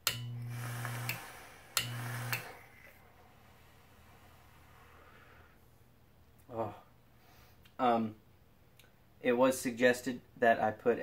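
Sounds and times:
sharp relay click: 0:00.0 - 0:00.4, 0:01.8 - 0:02.5
low electrical hum: 0:00.0 - 0:11.0.

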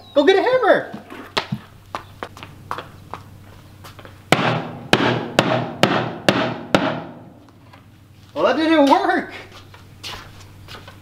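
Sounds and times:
hammer striking a box: 0:04.4 - 0:07.2.

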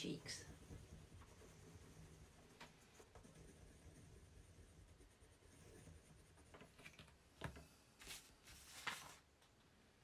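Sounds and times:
pencil scratching on wood: 0:00.0 - 0:07.1.

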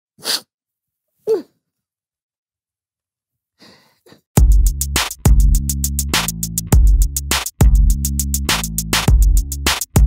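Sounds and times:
man sniffing intake: 0:00.2 - 0:00.5, 0:03.6 - 0:04.3
faint breath: 0:03.6 - 0:04.2.

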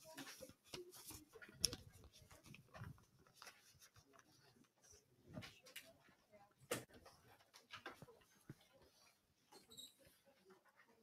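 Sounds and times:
faint rustles and clicks: 0:00.0 - 0:11.0.

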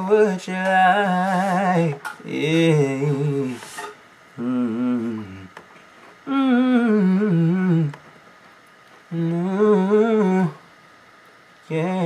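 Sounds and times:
man humming: 0:04.4 - 0:05.6, 0:06.2 - 0:08.0, 0:09.1 - 0:10.6.

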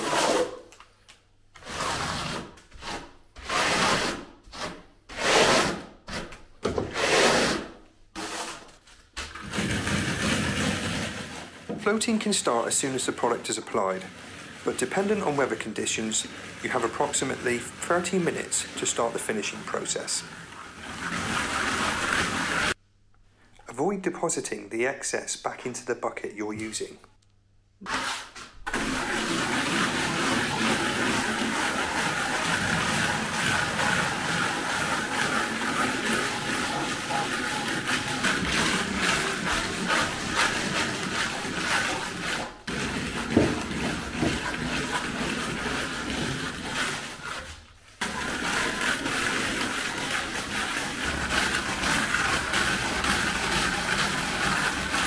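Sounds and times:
hand float scraping render: 0:00.0 - 0:00.9, 0:01.6 - 0:22.8, 0:27.8 - 0:55.0.

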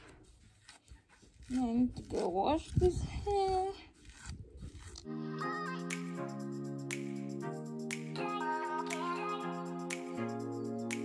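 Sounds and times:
comb scraping through hair: 0:00.0 - 0:05.1
synth chord music: 0:05.0 - 0:11.0.

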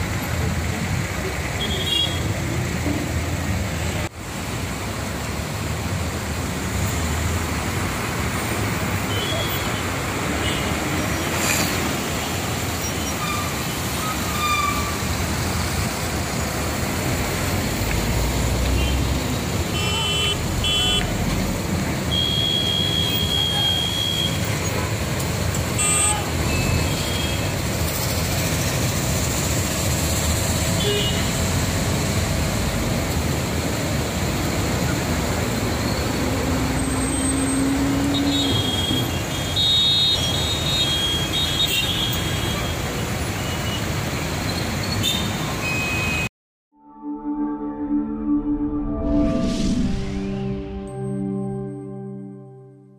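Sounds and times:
road traffic engines running: 0:00.0 - 0:46.3.

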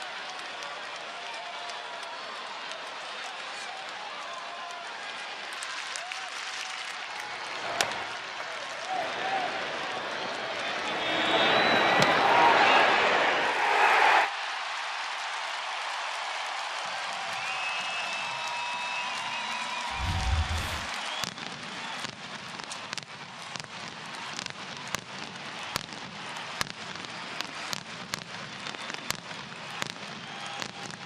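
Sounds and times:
ballpark crowd noise: 0:00.0 - 0:31.0
deep firework boom: 0:19.9 - 0:20.9.

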